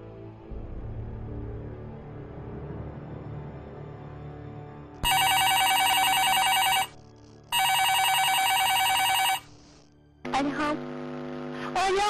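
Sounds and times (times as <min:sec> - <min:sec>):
telephone ringing electronic trill: 0:05.0 - 0:09.5.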